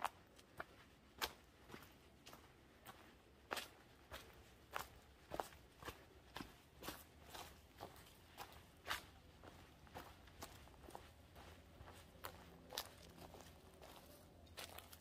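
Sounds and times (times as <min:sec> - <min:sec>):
footsteps on leafy dirt path: 0:00.0 - 0:15.0.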